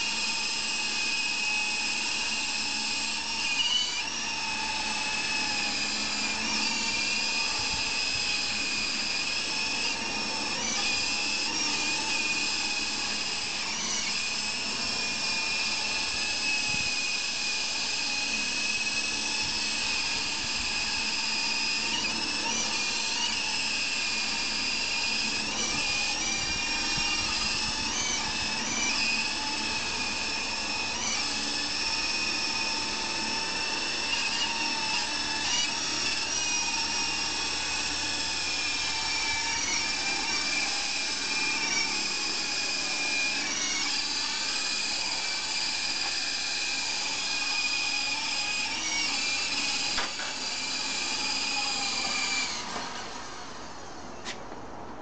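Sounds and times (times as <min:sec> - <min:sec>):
rc helicopter motor whine: 0:00.0 - 0:54.9.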